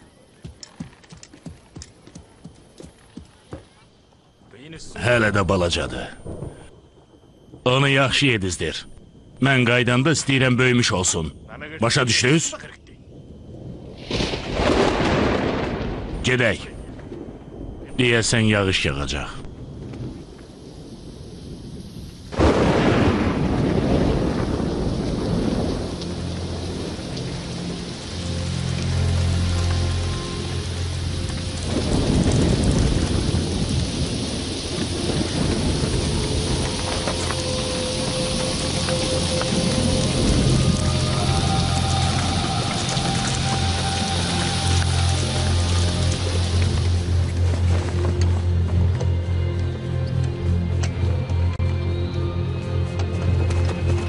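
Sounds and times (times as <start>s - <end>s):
thunder crack: 13.1s - 18.0s, 19.5s - 28.6s, 31.3s - 47.4s
heavy rain: 13.1s - 54.0s.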